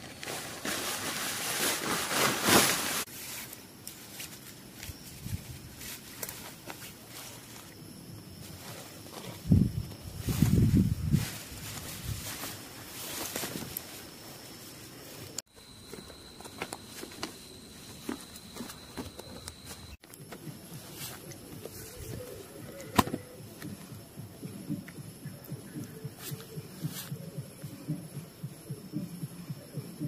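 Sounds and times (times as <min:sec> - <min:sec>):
tent fabric rustling: 0:00.0 - 0:07.7, 0:08.4 - 0:14.8.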